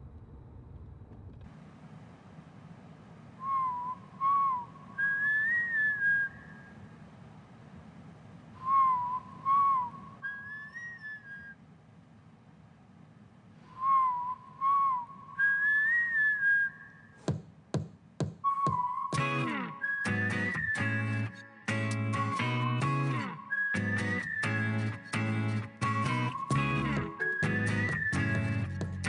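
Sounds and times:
faint low hum: 0.0 - 18.2
person whistling a tune: 3.4 - 6.4, 8.6 - 11.5, 13.8 - 16.9, 18.4 - 29.0.

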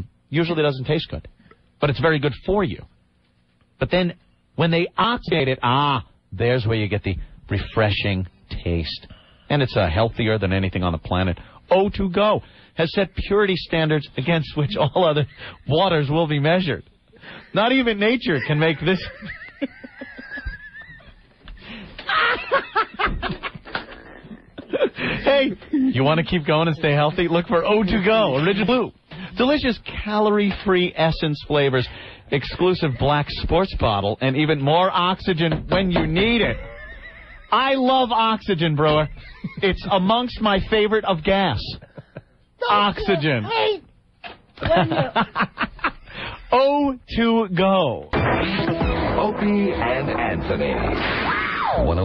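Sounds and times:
person chuckling: 18.4 - 26.0, 41.8 - 43.4, 44.6 - 46.5.

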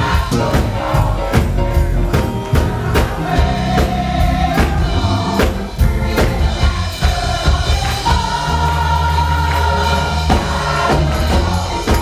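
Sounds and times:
gospel choir singing: 0.0 - 12.0
steady beat: 0.0 - 12.0.

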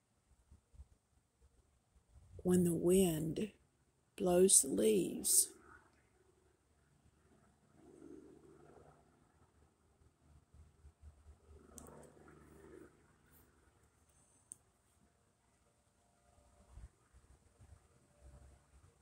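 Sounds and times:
faint clicks: 11.7 - 12.2.

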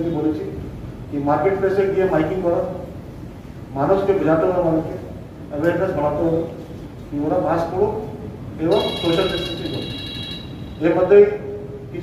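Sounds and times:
telephone electronic ringing: 8.7 - 10.8.

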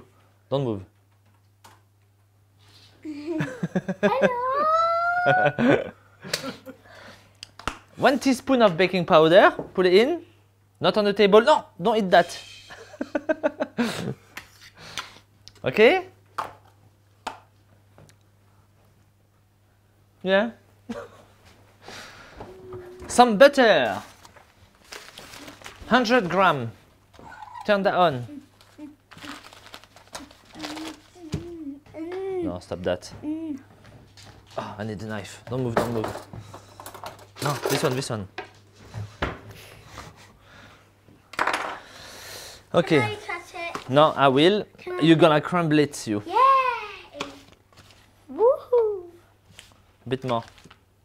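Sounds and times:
paper wrapper rustling: 23.8 - 26.4, 28.3 - 31.4, 49.5 - 50.8.

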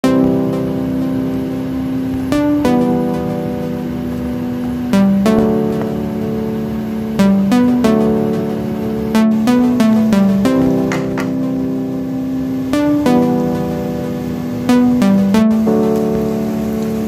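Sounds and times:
background music of long held notes: 0.0 - 17.0.

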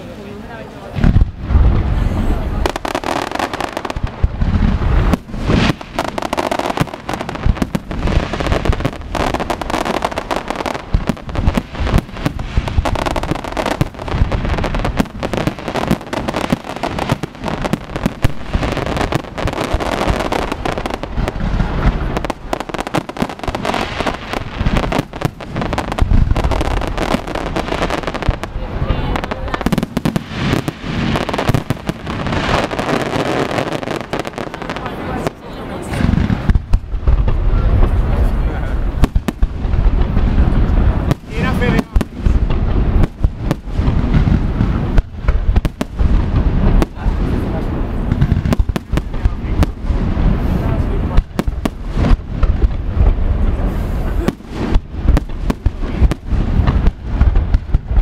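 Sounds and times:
heavy firework booms: 0.0 - 58.0
firework shell bursts and crackling: 2.6 - 58.0.

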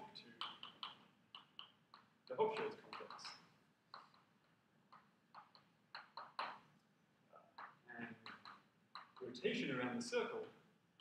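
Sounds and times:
chalk tapping and scratching: 0.3 - 6.7, 7.6 - 9.2.

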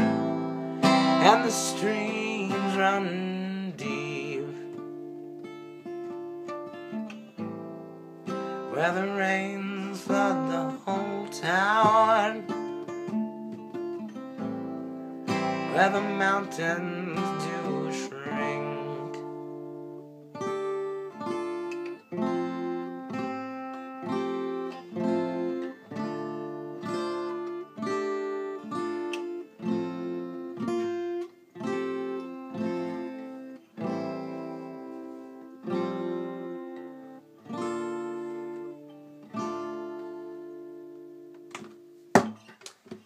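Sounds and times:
acoustic guitar chords: 0.0 - 43.0.

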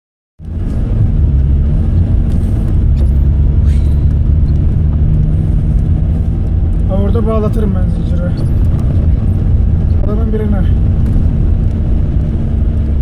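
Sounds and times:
vehicle engine and tyre rumble: 0.4 - 13.0.

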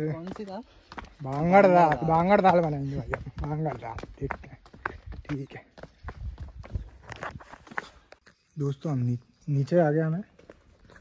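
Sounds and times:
footsteps on stone steps: 0.0 - 8.5, 9.8 - 11.0.

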